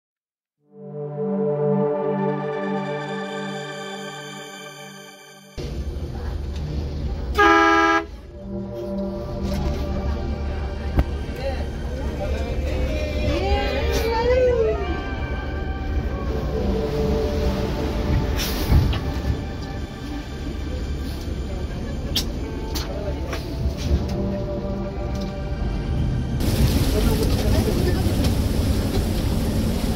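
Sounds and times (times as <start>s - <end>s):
low engine rumble: 5.6s - 29.9s
loud horn blast: 7.3s - 10.1s.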